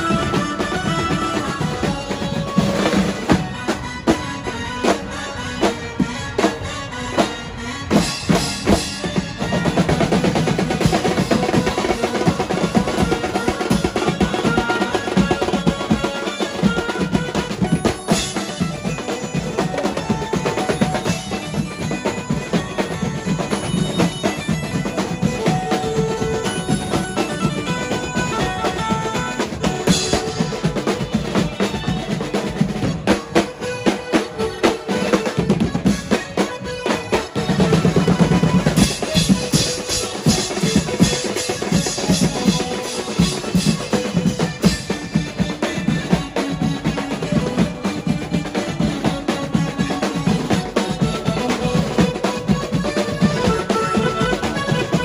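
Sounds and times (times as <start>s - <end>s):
cymbals: 0.0s - 55.0s
fast snare and bass drumming: 0.0s - 55.0s.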